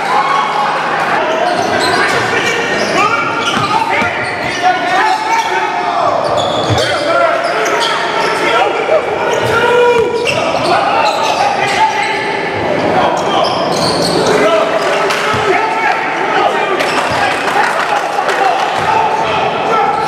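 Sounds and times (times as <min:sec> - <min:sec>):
voices echoing in hall: 0:00.0 - 0:20.0.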